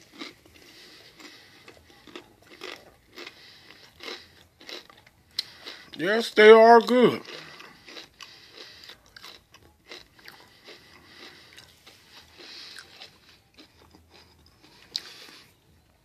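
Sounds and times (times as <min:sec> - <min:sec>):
person chewing potato chips: 0:00.0 - 0:15.6.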